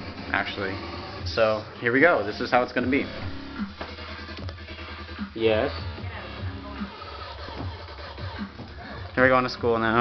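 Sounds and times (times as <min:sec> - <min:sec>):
quiet electronic music: 0:00.0 - 0:10.0.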